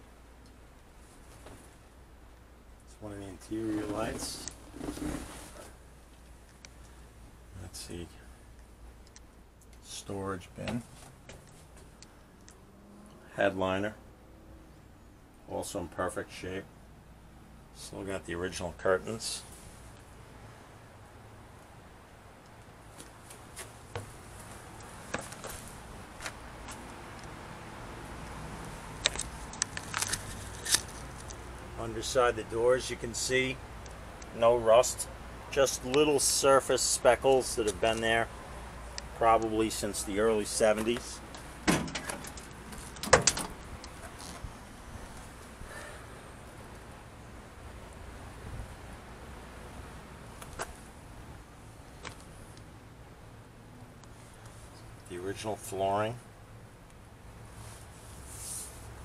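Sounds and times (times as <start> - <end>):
steel van door clunk: 41.6 - 43.6.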